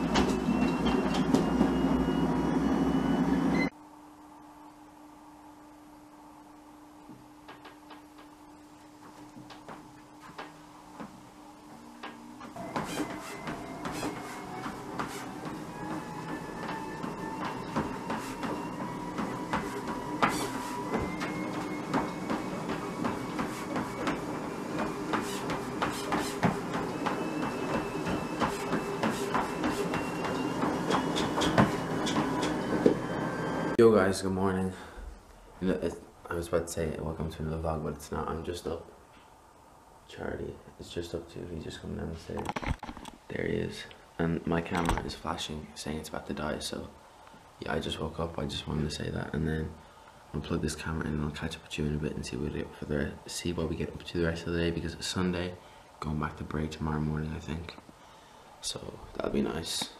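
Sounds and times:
footfalls on treadmill belt: 0.0s - 2.0s, 9.0s - 11.2s, 12.0s - 33.2s
treadmill motor whine: 0.0s - 33.9s
low steady hum: 2.1s - 12.6s.

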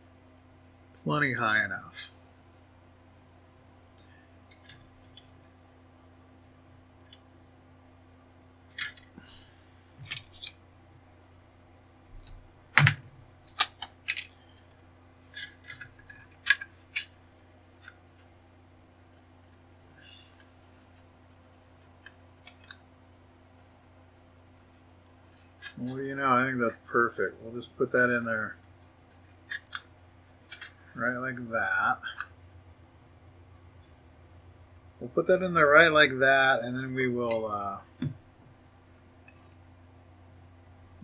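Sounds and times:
faint steady hum: 0.0s - 41.0s
plastic parts clicking on mat: 22.0s - 22.8s.

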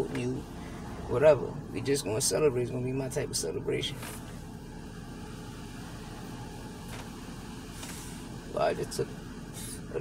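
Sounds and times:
low hum in car cabin: 0.0s - 10.0s.

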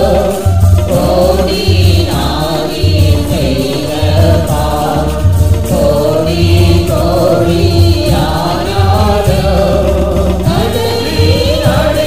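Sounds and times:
person singing worship song: 0.0s - 12.0s.

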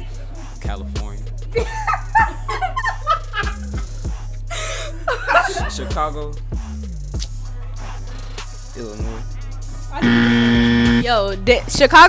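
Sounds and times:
hip-hop beat: 0.0s - 12.0s
wrong-answer buzzer: 10.0s - 11.1s.

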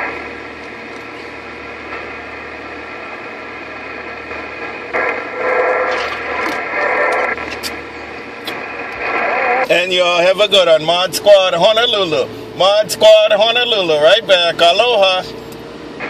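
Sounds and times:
radio static: 0.0s - 15.4s
muffled radio signal burst: 1.0s - 10.7s.

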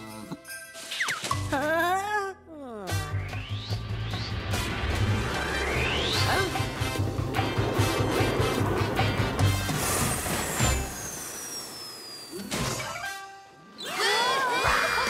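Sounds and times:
music: 0.0s - 10.9s
low rumble: 3.8s - 11.0s
long falling whistle: 9.8s - 12.8s.

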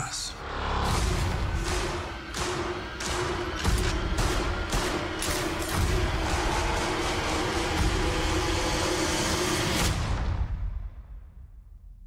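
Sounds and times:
dramatic trailer music: 0.0s - 11.9s.

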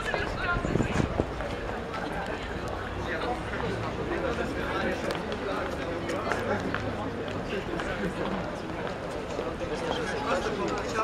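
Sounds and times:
city background noise: 0.0s - 11.0s
passersby talking: 0.0s - 11.0s.

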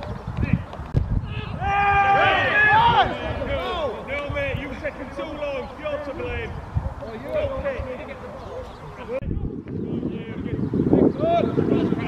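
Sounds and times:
wind noise on microphone: 0.0s - 12.0s
men shouting: 1.3s - 6.6s.

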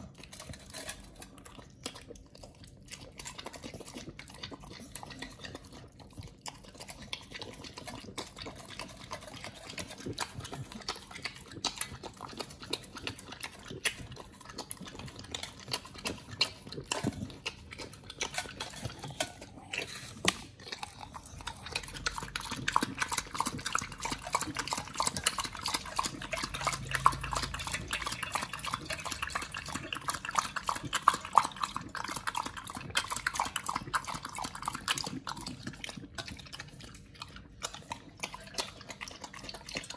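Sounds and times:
dog chewing: 0.0s - 39.9s
dog lapping: 0.0s - 39.9s.

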